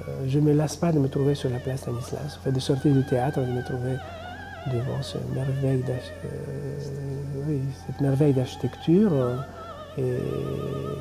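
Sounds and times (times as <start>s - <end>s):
opera music with vibrato singer: 0.0s - 11.0s.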